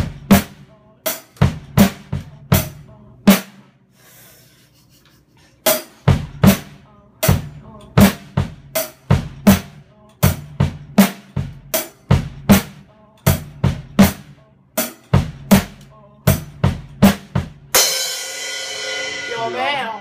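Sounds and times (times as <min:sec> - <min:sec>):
acoustic drum kit groove: 0:00.0 - 0:20.0
cymbal crash ringing: 0:17.8 - 0:20.0.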